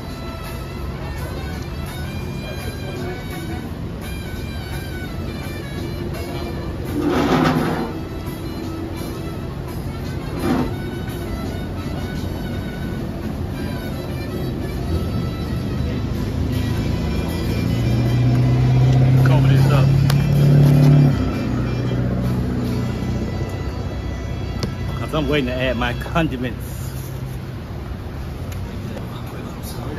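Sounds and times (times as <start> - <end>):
outdoor background noise: 0.0 - 29.9.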